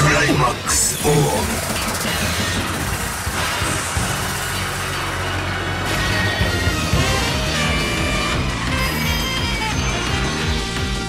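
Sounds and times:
dramatic soundtrack music: 0.0s - 11.0s
rushing transformation effects: 0.0s - 11.0s.

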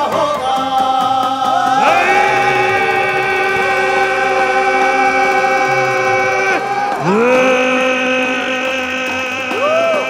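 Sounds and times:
men singing a long note: 0.0s - 10.0s.

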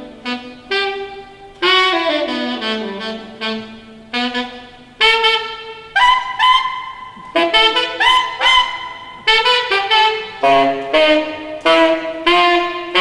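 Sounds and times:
saxophone playing jazz: 0.0s - 13.0s.

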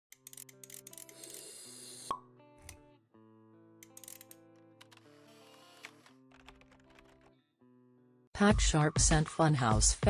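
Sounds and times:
background music: 0.1s - 10.0s.

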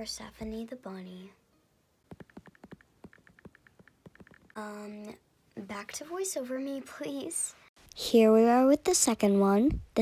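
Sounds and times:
fingers tapping on touchscreen: 2.1s - 4.6s.

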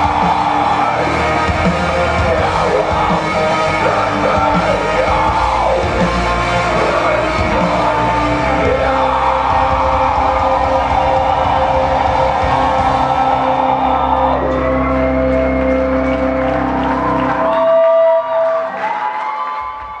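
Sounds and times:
rock band sustained chord: 0.0s - 18.6s
crowd whooping and cheering: 0.0s - 20.0s.

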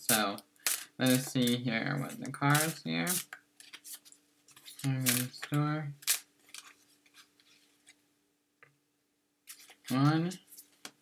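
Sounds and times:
cards being shuffled: 0.6s - 8.0s, 9.5s - 11.0s
sharp papery snap: 2.5s - 3.8s, 4.8s - 6.6s.

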